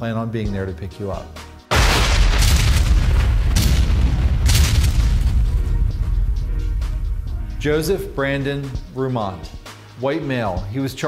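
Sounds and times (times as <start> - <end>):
sharp crash: 1.7 - 8.3
deep boom rumble: 1.7 - 8.5.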